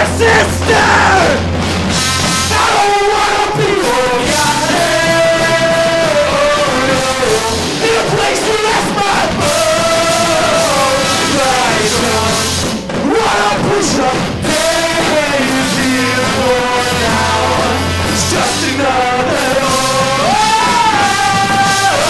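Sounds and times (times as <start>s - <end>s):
man singing: 0.0s - 1.4s, 2.5s - 22.0s
drums: 0.0s - 22.0s
trumpet: 0.0s - 22.0s
melodica: 1.9s - 7.4s, 14.5s - 20.2s.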